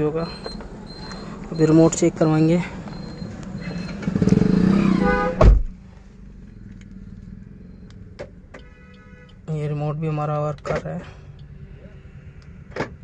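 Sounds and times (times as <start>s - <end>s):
car engine idling hum: 0.0s - 13.0s.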